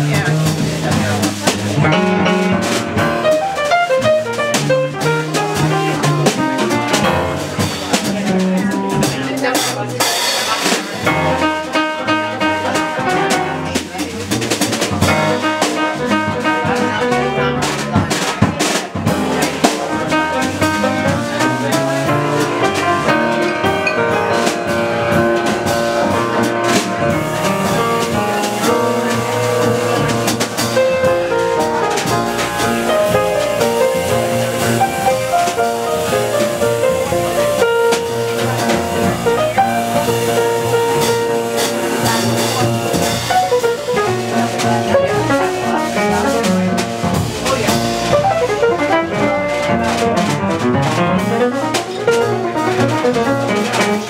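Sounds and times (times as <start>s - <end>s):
jazz piano trio: 0.0s - 54.0s
piano melody: 0.0s - 54.0s
sharp drum hits: 0.0s - 54.0s.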